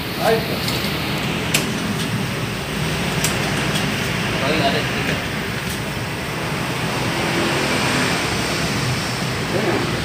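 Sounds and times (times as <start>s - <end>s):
workshop machinery hum: 0.0s - 10.0s.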